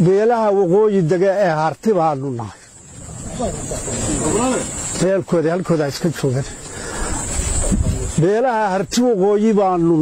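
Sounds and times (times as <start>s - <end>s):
steady high-pitched hiss: 0.0s - 10.0s
low rumbling noise: 2.7s - 5.8s.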